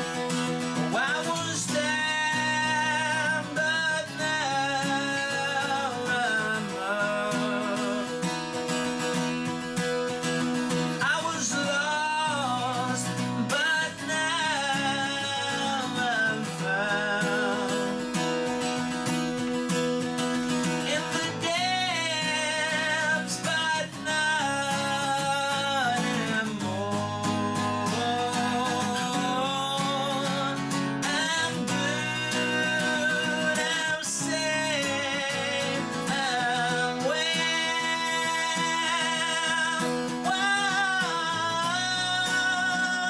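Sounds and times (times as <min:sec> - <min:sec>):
acoustic guitar strumming: 0:00.0 - 0:43.0.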